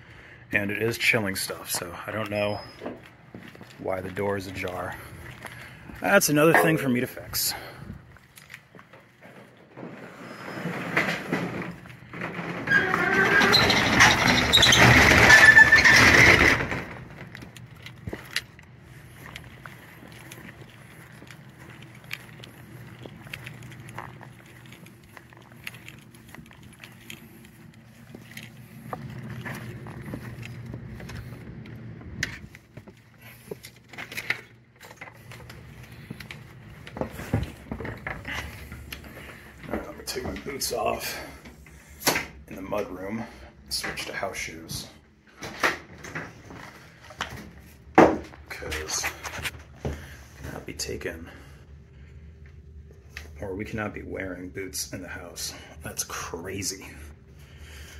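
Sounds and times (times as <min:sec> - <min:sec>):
footsteps outdoors: 0:00.9 - 0:09.9, 0:17.0 - 0:41.8.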